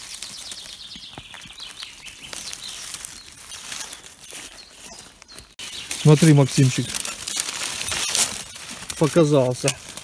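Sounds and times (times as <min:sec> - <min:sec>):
crunch of leaves: 0:00.0 - 0:10.0
dry leaves crackling and rustling: 0:00.0 - 0:10.0.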